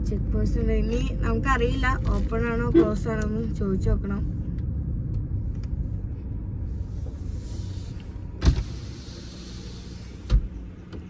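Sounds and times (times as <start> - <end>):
car engine and road rumble: 0.0 - 11.0
window thump at stop: 8.4 - 8.8.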